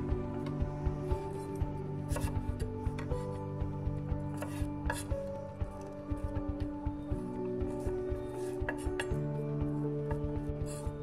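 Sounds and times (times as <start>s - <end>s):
background music: 0.0s - 11.0s
knife slicing on wooden board: 2.1s - 2.4s.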